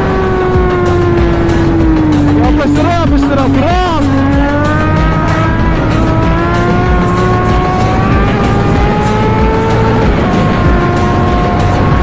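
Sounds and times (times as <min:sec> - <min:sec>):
motorcycle engine accelerating: 0:00.0 - 0:12.0.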